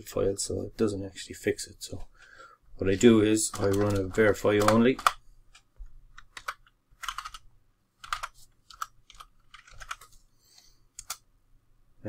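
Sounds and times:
computer keyboard key clicks: 3.5s - 5.2s, 6.2s - 7.4s, 8.0s - 10.1s, 11.0s - 11.2s.

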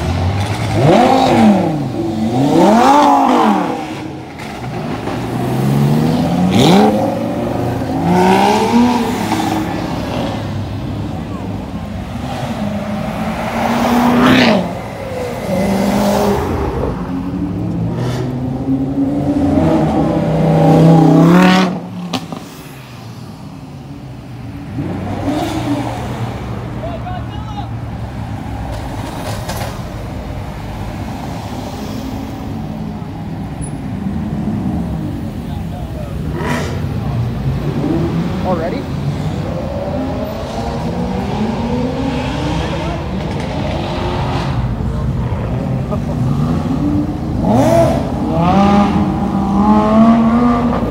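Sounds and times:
crowd voices: 0.0s - 18.9s, 23.6s - 50.9s
sports car engines revving: 0.0s - 50.9s
engines idling: 22.2s - 50.9s.

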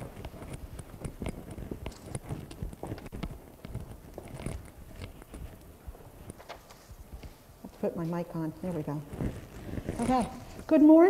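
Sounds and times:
footsteps: 0.0s - 11.0s
papers being handled: 0.0s - 11.0s.

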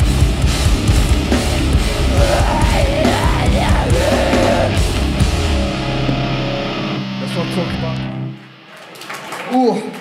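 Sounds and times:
distorted electric guitars and bass: 0.0s - 8.7s
person shouting: 2.1s - 4.8s.

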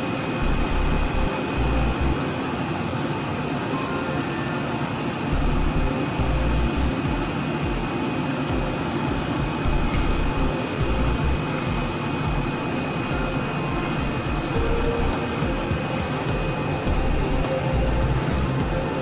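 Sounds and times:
cutting machine roar: 0.0s - 19.0s.

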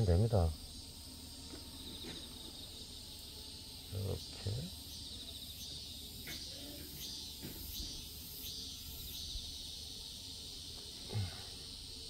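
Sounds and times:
faint chirping calls: 0.0s - 12.0s.

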